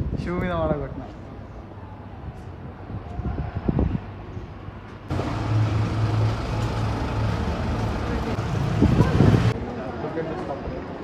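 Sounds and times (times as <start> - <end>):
street traffic noise: 0.0 - 11.0
vehicle engine humming: 5.1 - 9.6.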